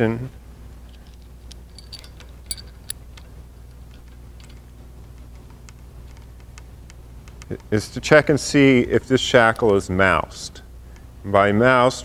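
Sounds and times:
metal shackle and chain clinking: 0.8s - 4.7s.

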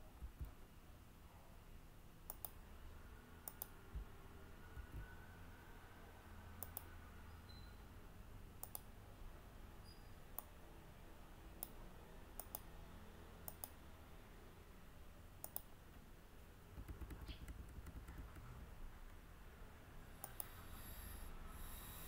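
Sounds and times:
faint low background noise: 0.0s - 22.0s
computer mouse button clicking: 2.3s - 2.6s, 3.5s - 3.7s, 6.6s - 6.9s, 8.6s - 8.9s, 12.4s - 12.6s, 13.5s - 13.8s, 15.4s - 15.7s.

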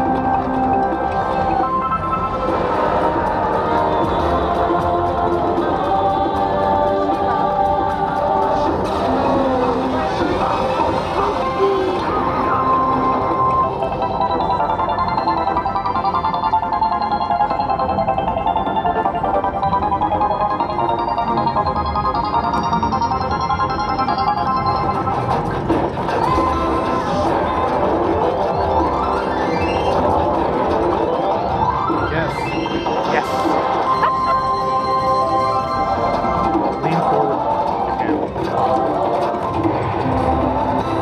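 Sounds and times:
slot machine chime tones: 12.3s - 30.2s, 30.9s - 37.9s.

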